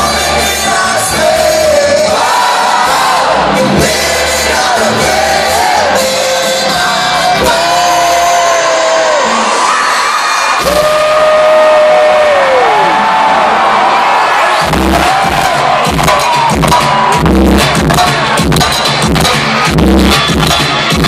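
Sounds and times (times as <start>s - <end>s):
drums and bass heavy beat: 0.0s - 9.2s, 10.6s - 11.5s, 14.6s - 21.0s
live band playing: 0.0s - 9.6s, 14.6s - 21.0s
crowd cheering: 0.0s - 21.0s.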